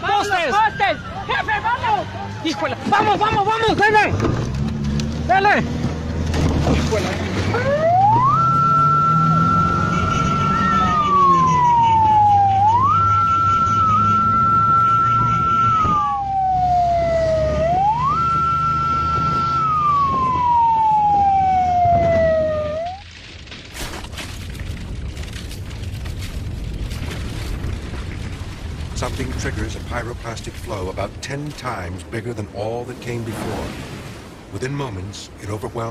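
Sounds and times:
motorbike engines droning: 4.2 - 23.0
siren wailing: 7.4 - 23.1.

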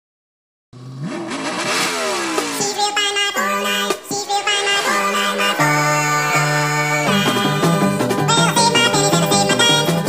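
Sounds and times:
car engine revving: 0.8 - 10.0.

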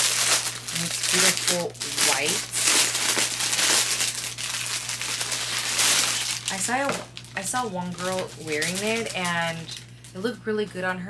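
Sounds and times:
plastic bag crinkling: 0.0 - 10.2.

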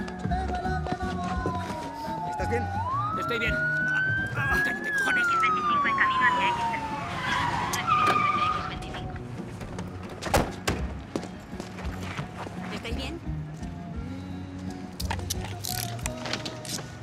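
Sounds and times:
police siren wail: 1.4 - 9.0.

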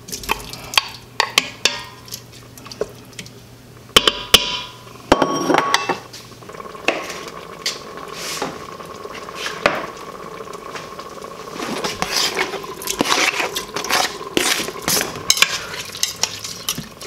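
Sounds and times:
wooden spoon scraping bowl: 11.5 - 16.7.

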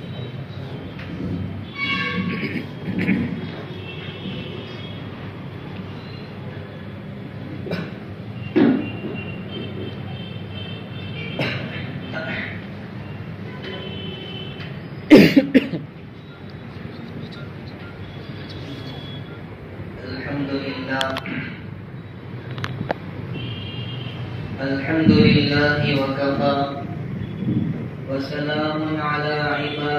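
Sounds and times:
man coughing: 2.2 - 3.4, 7.6 - 8.1, 11.3 - 12.6, 15.1 - 15.9.

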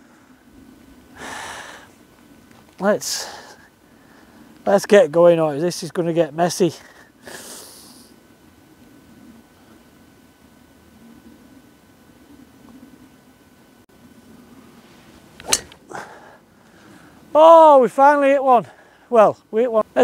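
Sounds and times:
golf driver striking ball: 15.4 - 15.9.

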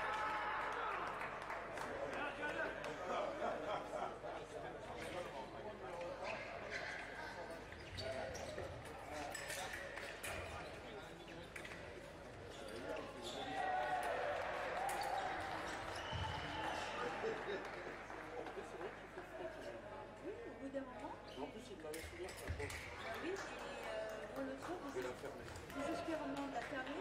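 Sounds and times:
murmur of voices in a hall: 0.0 - 27.0.

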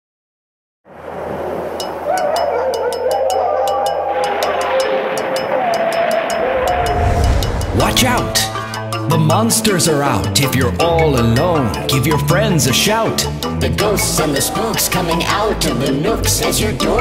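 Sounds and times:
eerie wind: 0.9 - 9.1
wolf howling: 2.0 - 7.3
low rumble: 6.4 - 9.2.

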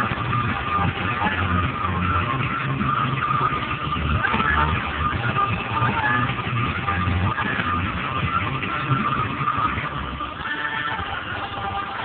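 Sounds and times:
music playing: 0.0 - 12.0.

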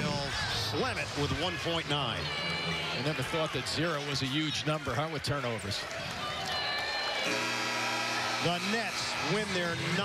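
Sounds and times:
arena crowd noise: 0.0 - 10.0
low buzzing game horn: 7.2 - 10.0.

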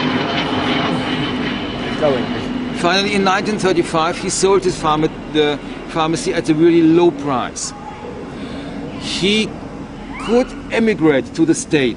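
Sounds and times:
engine drone: 0.0 - 11.9
low hum: 0.0 - 11.9.

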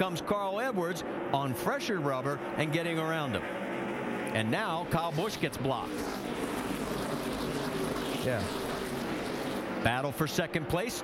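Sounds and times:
racing car engines at speed: 0.0 - 11.0.

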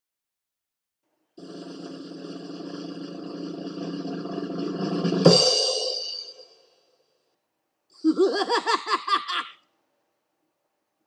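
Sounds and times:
drum roll: 1.4 - 6.8
cymbal crash: 4.3 - 6.8.

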